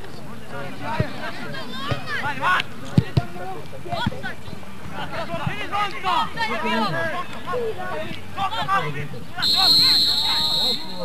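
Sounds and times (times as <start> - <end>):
voices shouting: 5.5 - 11.0.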